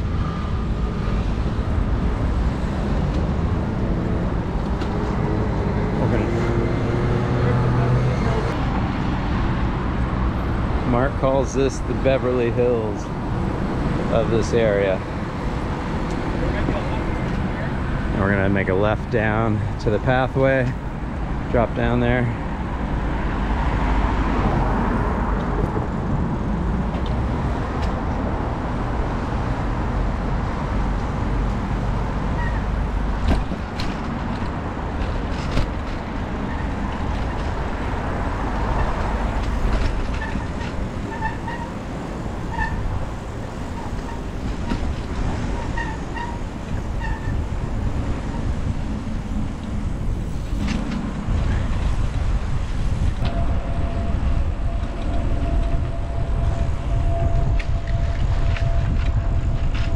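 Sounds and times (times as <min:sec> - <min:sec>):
bicycle rolling noise: 0:22.4 - 0:59.9
wind on microphone: 0:22.4 - 0:59.9.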